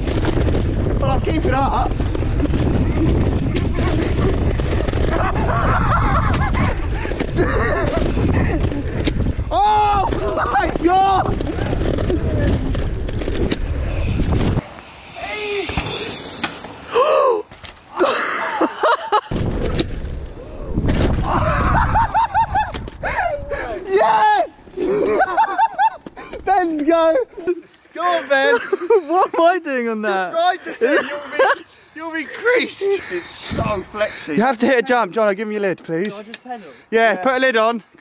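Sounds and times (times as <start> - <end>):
wind buffeting microphone: 0.0 - 15.1, 19.3 - 23.9, 33.4 - 34.2
tyres rumbling on dirt trail: 0.0 - 23.6
hiss: 14.6 - 18.1
short shouts: 15.1 - 15.8.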